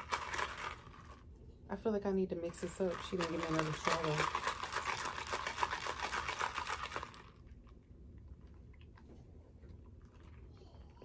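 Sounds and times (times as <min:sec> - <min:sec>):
ice rattling in plastic cup: 0:00.0 - 0:01.2, 0:02.5 - 0:07.4.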